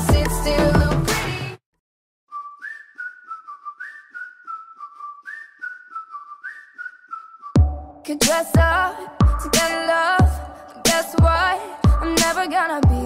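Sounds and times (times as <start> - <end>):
pop backing track with bass and drums: 0.0 - 1.6, 7.6 - 13.0
whistled melody: 2.3 - 8.2.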